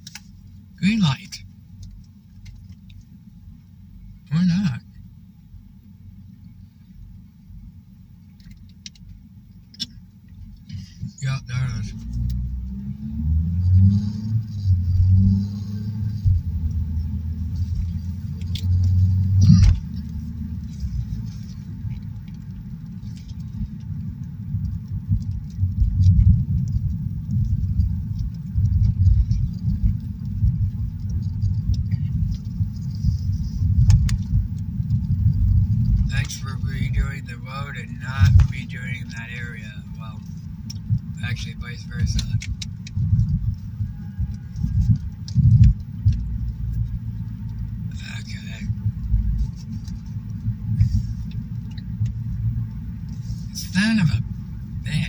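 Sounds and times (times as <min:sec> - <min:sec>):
car cabin road rumble: 0:00.0 - 0:55.0
car engine hum: 0:00.0 - 0:55.0.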